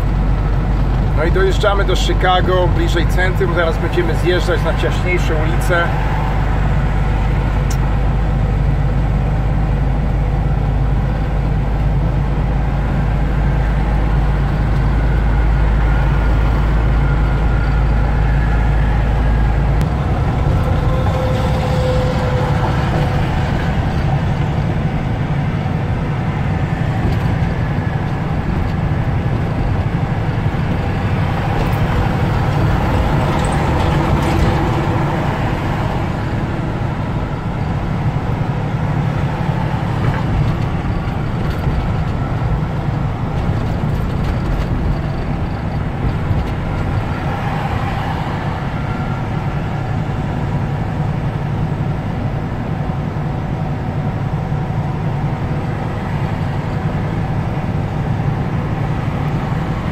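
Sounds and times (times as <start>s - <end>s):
diesel engine drone: 0.0s - 59.9s
tyre and road noise: 0.0s - 59.9s.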